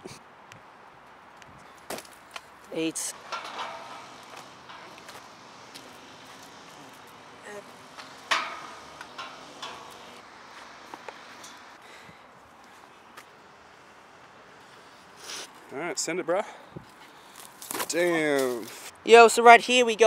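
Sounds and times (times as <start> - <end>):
outdoor background noise: 0.0 - 20.0
sharp metallic clank on gate: 3.1 - 11.8.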